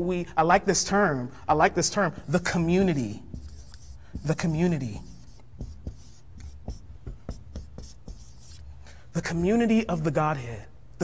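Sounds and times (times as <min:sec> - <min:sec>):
marker scratching on whiteboard: 0:02.0 - 0:10.2
marker tapping board: 0:03.3 - 0:08.6.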